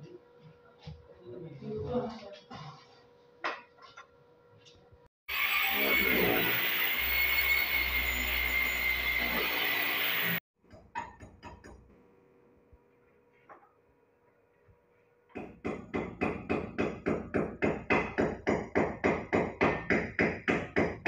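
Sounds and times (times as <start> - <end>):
electric drill whining: 5.3 - 10.4.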